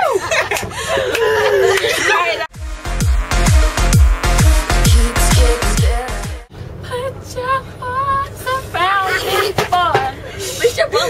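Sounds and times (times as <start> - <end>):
woman singing unaccompanied: 4.9 - 10.1
bus engine rumble: 5.1 - 11.0.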